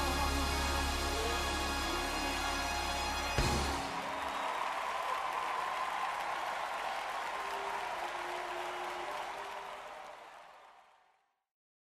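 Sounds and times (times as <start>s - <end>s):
crowd applause: 3.2s - 11.3s.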